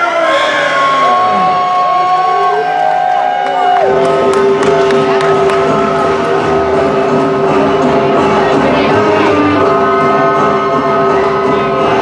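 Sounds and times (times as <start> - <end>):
crowd cheering and whooping: 0.0 - 12.0.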